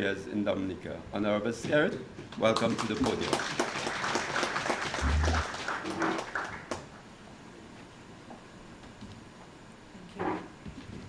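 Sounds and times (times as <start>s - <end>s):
scattered applause: 2.4s - 6.9s.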